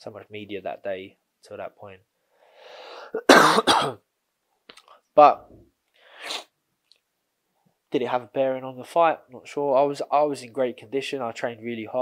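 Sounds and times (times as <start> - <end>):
man drawing breath: 2.2 - 3.2, 5.9 - 6.5
man coughing loudly: 3.2 - 4.0.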